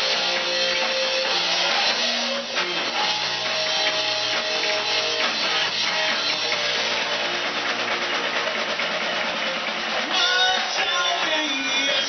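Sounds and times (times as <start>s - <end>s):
live rock band playing: 0.0s - 12.0s
strummed electric guitar: 0.0s - 12.0s.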